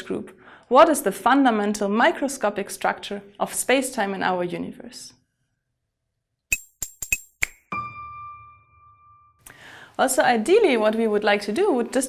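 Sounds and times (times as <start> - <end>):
sharp pop-in clicks: 6.5 - 7.7.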